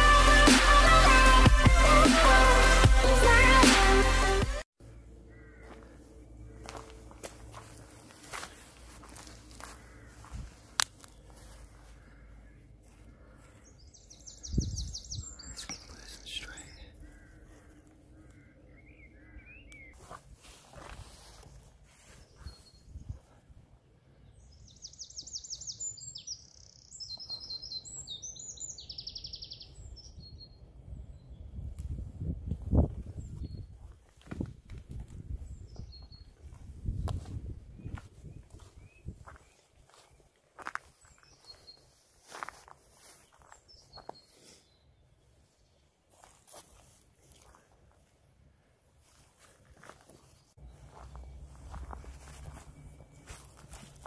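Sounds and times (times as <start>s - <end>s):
soft footsteps on garden path: 5.3s - 29.3s, 31.6s - 54.0s
songbird trills and chirps: 13.6s - 20.0s, 24.2s - 31.7s, 37.8s - 45.9s.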